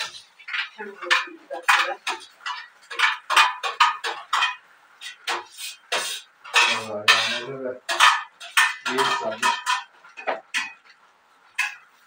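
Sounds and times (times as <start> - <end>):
dishes and cutlery clinking: 0.0 - 12.0.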